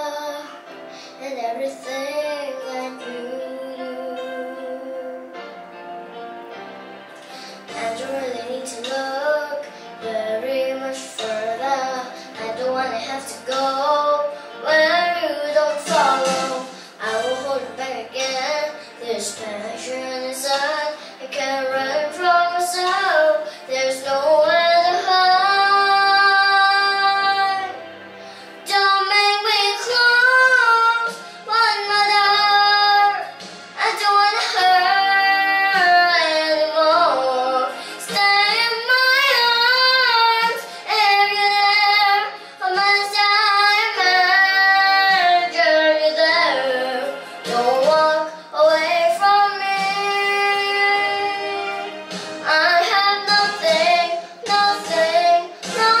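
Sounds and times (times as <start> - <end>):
girl singing a ballad: 0.0 - 56.0.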